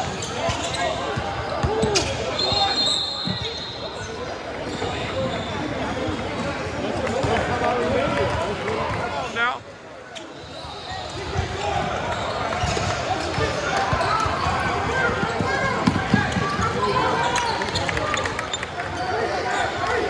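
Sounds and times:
people talking and calling out: 0.0 - 20.0.

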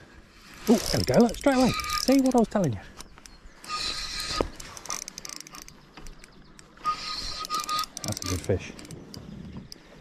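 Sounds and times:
fishing reel whirring: 0.3 - 2.5, 3.6 - 9.8
faint reel clicks: 0.5 - 10.0.

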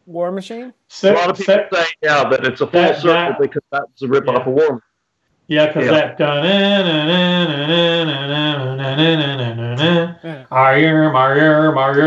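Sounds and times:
man vocally imitating guitar: 5.7 - 11.4.

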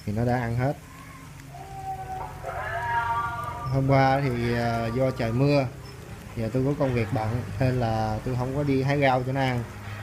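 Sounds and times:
drawn-out animal call: 0.8 - 8.1.

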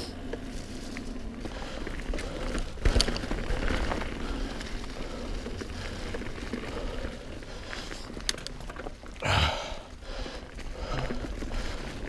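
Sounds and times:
bike tyres rolling over leaves: 0.0 - 12.0.

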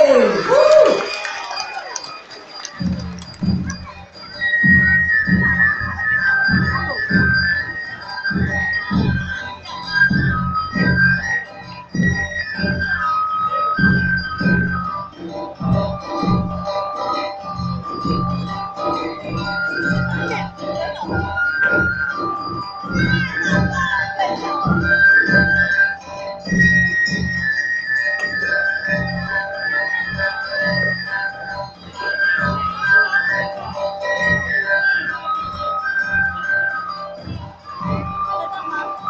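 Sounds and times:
drums beating driving rhythm: 0.0 - 39.0
high melody line: 0.0 - 39.0.

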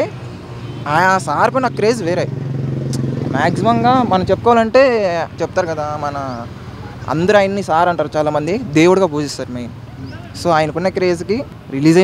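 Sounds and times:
engine hum: 0.0 - 12.0
man speaking: 0.8 - 2.3, 3.0 - 12.0.

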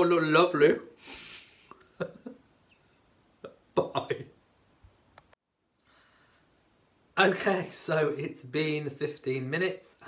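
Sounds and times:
man exhaling: 1.0 - 1.6
man chuckling: 1.6 - 2.5.

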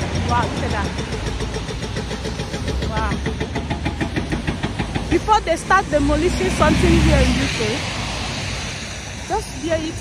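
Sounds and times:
diesel engine droning and clattering: 0.0 - 10.0.

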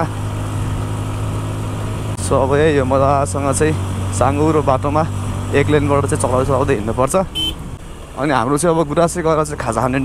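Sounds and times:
road and wind noise: 0.0 - 10.0.

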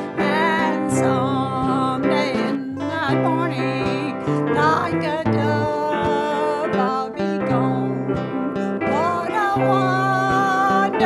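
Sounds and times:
acoustic guitar: 0.0 - 11.0
woman singing gospel song: 0.0 - 11.0.

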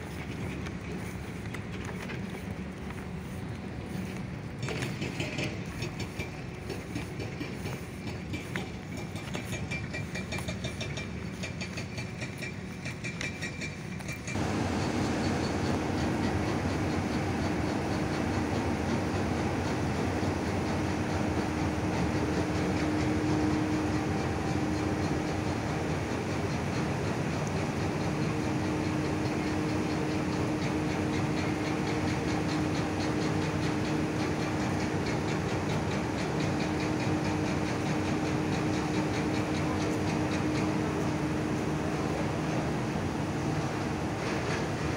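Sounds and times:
mechanical hum and rumble: 0.0 - 44.9.

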